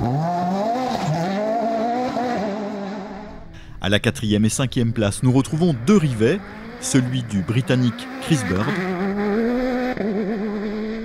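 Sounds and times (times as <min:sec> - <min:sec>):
buggy engine at high revs: 0:00.0 - 0:03.6, 0:05.3 - 0:11.0.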